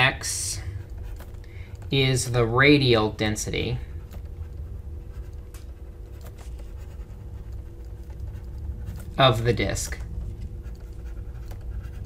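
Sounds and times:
low background hum: 0.0s - 12.0s
stylus scratching on tablet: 0.0s - 12.0s.

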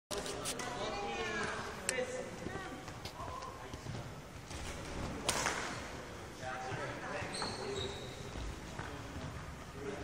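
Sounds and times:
indistinct voices in a hall: 0.1s - 10.0s
high squeak: 7.3s - 8.3s.

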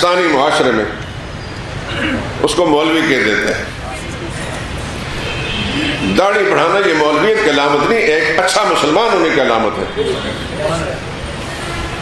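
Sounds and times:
low rumbling background noise: 0.0s - 12.0s.

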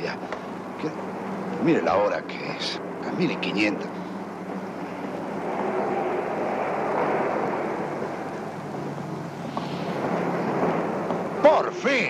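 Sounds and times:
passing vehicles rushing: 0.0s - 12.0s.

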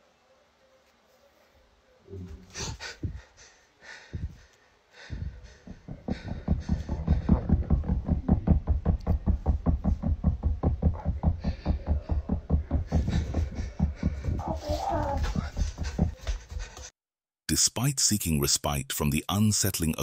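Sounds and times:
rapid deep thumps: 2.6s - 3.3s, 4.1s - 16.8s.

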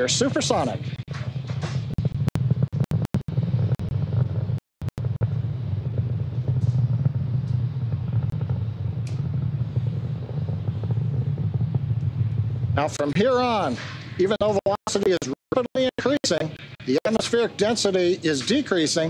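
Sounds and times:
rocket engines rumbling: 0.0s - 19.0s.

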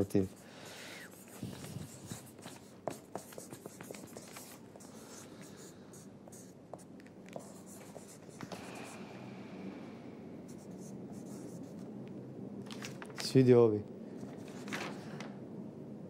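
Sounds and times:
ballpoint pen scratching paper: 1.2s - 8.3s.

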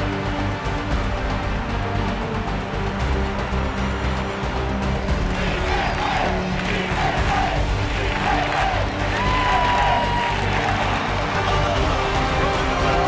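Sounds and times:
background music: 0.0s - 13.0s
stadium crowd cheering and shouting: 0.0s - 13.0s.

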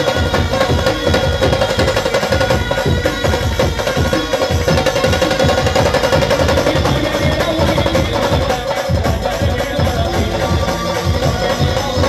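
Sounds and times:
drums beaten fast: 0.0s - 12.0s.

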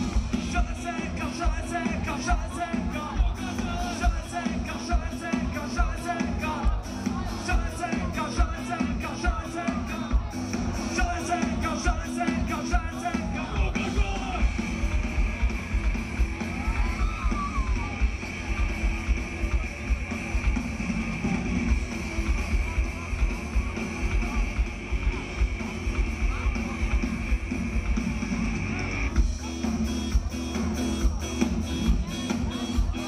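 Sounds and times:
live rock band: 0.0s - 33.0s.

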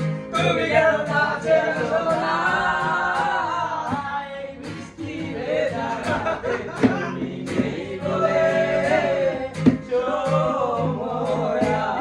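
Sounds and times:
acoustic guitar strumming: 0.0s - 12.0s
men singing: 0.1s - 12.0s.

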